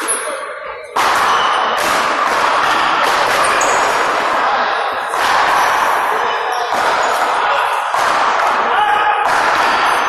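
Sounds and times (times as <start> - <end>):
murmur of indistinct voices: 0.0 - 10.0
balls smacking off paddles and wall: 0.9 - 6.0, 6.6 - 10.0.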